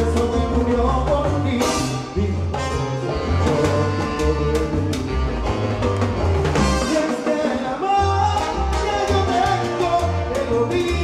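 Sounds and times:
salsa band playing: 0.0s - 11.0s.

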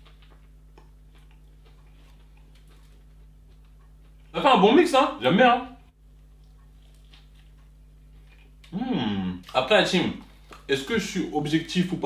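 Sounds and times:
chewing with crunches: 0.0s - 4.5s, 6.1s - 8.8s, 9.4s - 11.7s
steady low hum: 0.0s - 12.0s.

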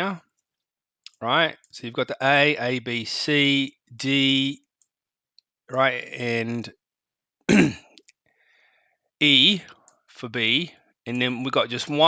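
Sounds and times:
man clearing his throat: 7.5s - 7.9s.

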